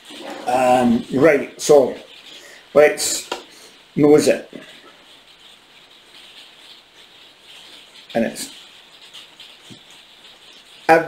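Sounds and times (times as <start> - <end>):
low room hiss: 0.0 - 11.0
person sniffing and breathing: 2.2 - 2.7, 3.5 - 3.9.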